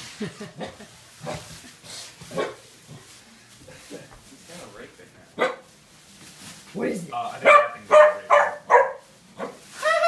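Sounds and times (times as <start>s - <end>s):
small dog barking: 5.4s - 5.7s, 7.4s - 9.6s.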